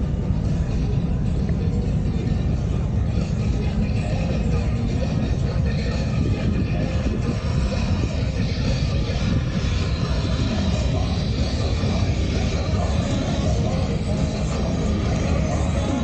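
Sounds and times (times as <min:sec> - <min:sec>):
engines rumbling low: 0:00.0 - 0:16.0
vehicles driving past: 0:00.0 - 0:16.0.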